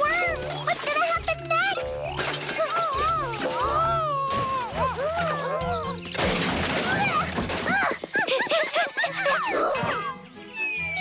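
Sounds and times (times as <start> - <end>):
cartoon background music: 0.0 - 11.0.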